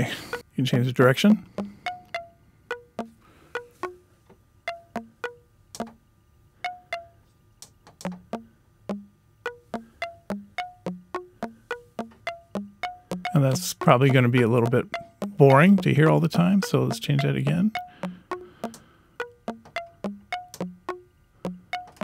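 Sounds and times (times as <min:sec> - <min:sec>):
plucked chime-like synth notes: 0:04.7 - 0:05.9, 0:06.7 - 0:07.1, 0:08.3 - 0:22.0.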